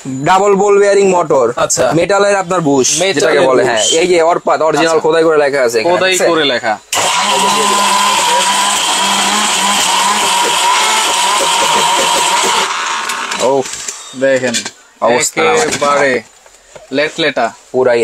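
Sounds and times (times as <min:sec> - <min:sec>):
mixer grinder motor whine: 0:06.9 - 0:14.0.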